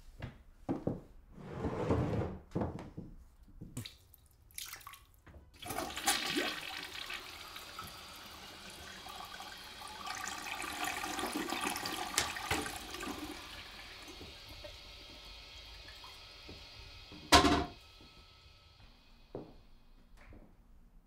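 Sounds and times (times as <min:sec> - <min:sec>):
cistern refilling: 0:03.8 - 0:17.2
toilet flushing: 0:05.6 - 0:19.6.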